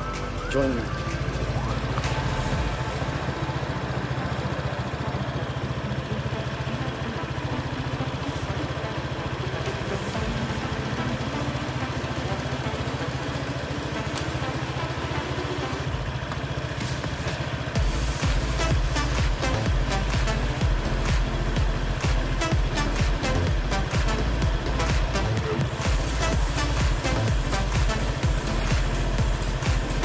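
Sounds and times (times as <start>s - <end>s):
background music: 0.0s - 30.0s
low machinery drone: 0.0s - 30.0s.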